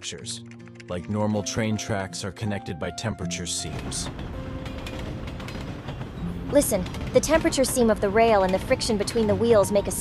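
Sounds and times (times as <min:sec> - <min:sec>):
train wheels rumbling and clicking: 0:03.6 - 0:10.0.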